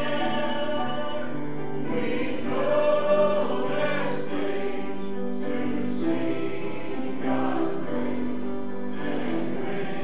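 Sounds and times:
choir singing gospel: 0.0 - 10.0.

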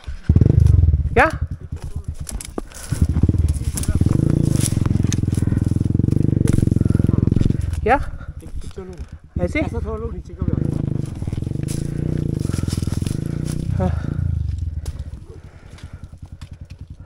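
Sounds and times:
dirt bike engine running: 0.0 - 17.0.

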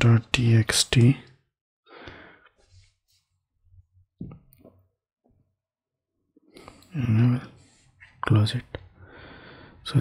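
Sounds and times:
man speaking: 0.0 - 1.4.

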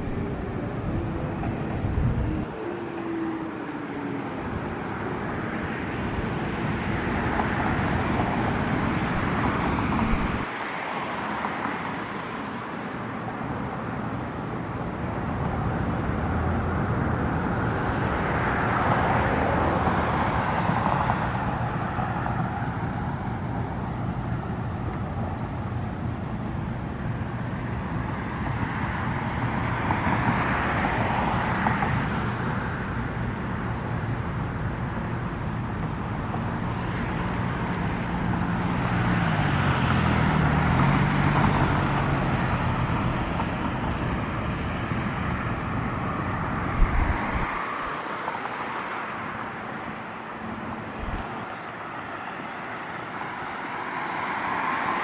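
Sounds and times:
low engine drone: 0.0 - 10.5
cars passing: 0.0 - 55.0.

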